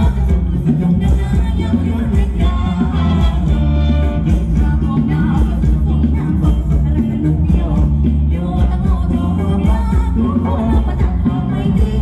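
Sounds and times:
live band dance music: 0.0s - 12.0s
person singing: 0.0s - 12.0s.

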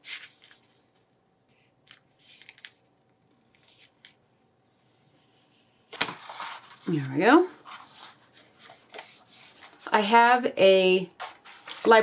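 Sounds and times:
paper rustles and taps: 11.2s - 12.0s.

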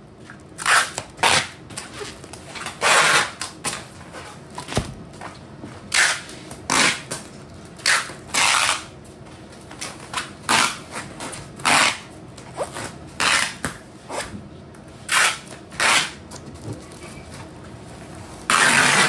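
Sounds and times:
packing tape ripping from dispenser: 0.6s - 3.9s, 5.9s - 8.9s, 9.8s - 14.3s, 15.1s - 16.2s, 18.5s - 19.0s.

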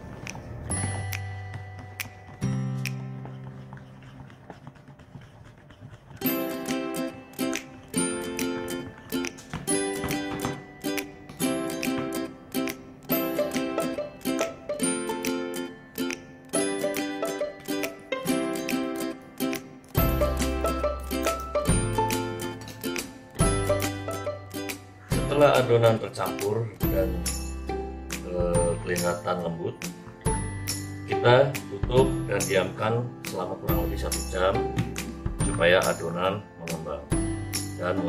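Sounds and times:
plucked ukulele tune: 10.2s - 25.4s.

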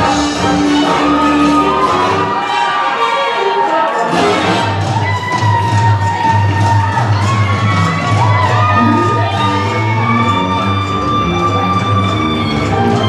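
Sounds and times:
live band playing waltz: 8.8s - 9.3s
spectators cheering and shouting: 8.8s - 9.4s
steady bass line: 8.8s - 9.5s.

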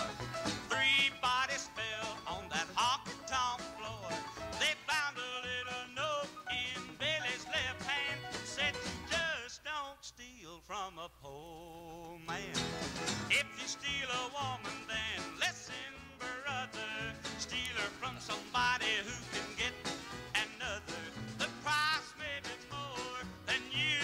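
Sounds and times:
country band playing: 0.0s - 9.4s, 12.2s - 24.0s.

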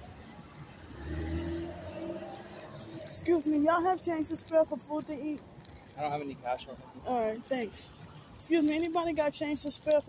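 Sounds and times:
car engine hum passing: 0.0s - 4.2s.

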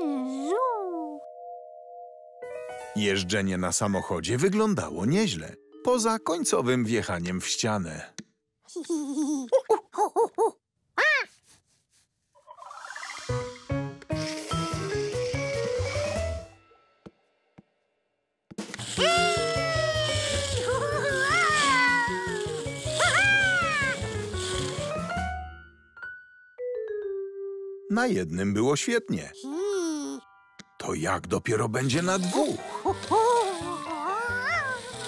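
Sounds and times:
cartoon monkey chattering: 8.8s - 11.4s.

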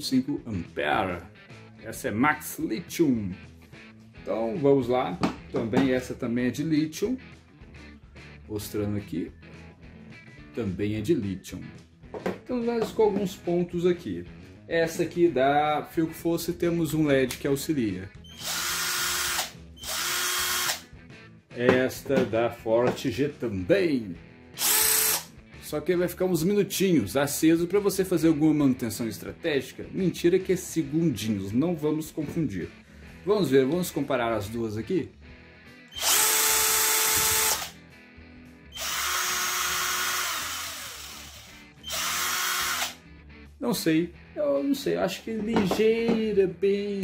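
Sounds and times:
cordless drill whine: 18.3s - 20.8s, 24.6s - 25.3s, 35.9s - 37.7s, 38.7s - 43.0s.

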